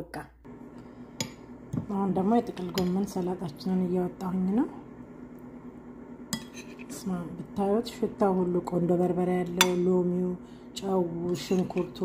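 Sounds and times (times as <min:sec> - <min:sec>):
person talking: 0:01.8 - 0:04.8, 0:06.9 - 0:12.0.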